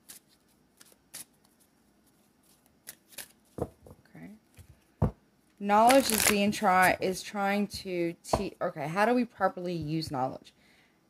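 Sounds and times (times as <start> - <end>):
cards being shuffled: 0.0 - 3.8, 5.8 - 7.0.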